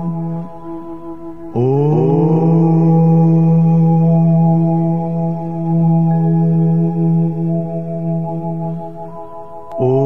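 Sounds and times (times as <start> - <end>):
low chanting voice: 0.0 - 10.0
meditation music drone: 0.0 - 10.0.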